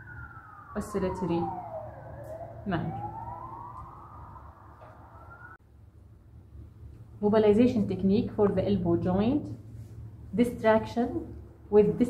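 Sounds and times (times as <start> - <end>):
wailing siren: 0.0 - 5.6.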